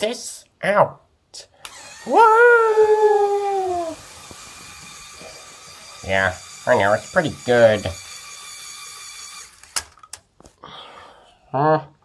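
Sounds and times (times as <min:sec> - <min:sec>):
thin steady tones: 0:02.1 - 0:09.6.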